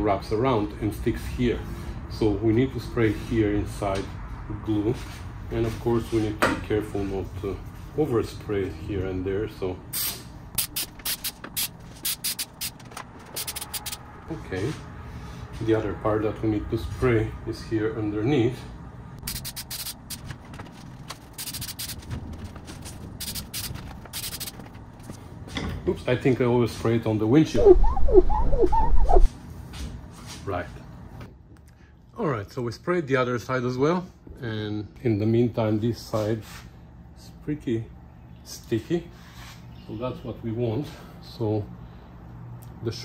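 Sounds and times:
aerosol spray hissing: 19.3 - 20.2, 23.2 - 24.5
rag squeaking on glass: 27.6 - 29.3.

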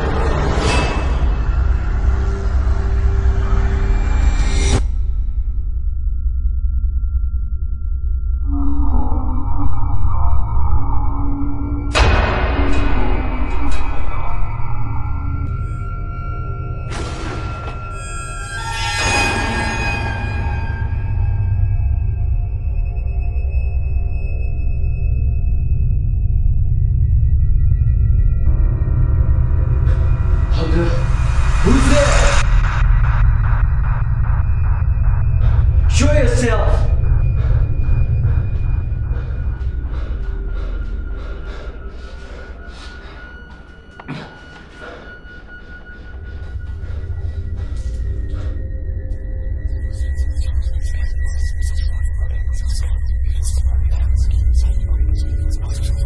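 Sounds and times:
horror soundtrack drone: 0.0 - 56.0
deep steady rumble: 1.3 - 18.0, 20.4 - 43.9, 45.5 - 56.0
long held high tones: 6.1 - 12.2, 15.2 - 25.4.

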